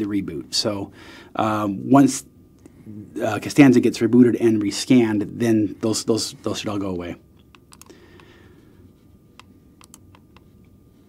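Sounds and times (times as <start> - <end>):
keyboard and mouse clicks: 7.5 - 8.0, 9.4 - 10.5.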